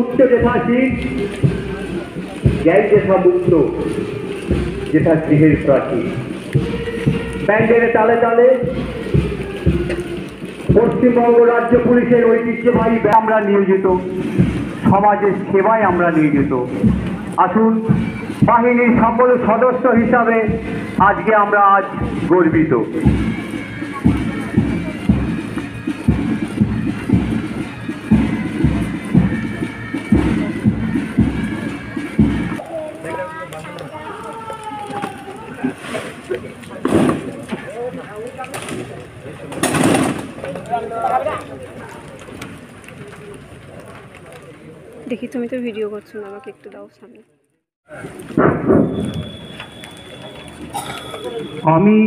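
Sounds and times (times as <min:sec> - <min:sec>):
marching music: 0:00.0 - 0:32.7
rain on wet pavement: 0:00.0 - 0:46.8, 0:47.9 - 0:52.0.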